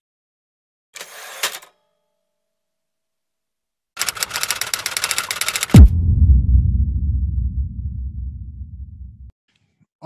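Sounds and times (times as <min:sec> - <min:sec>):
rapid dense clicking clatter: 0:04.0 - 0:05.8
deep falling boom: 0:05.8 - 0:09.3.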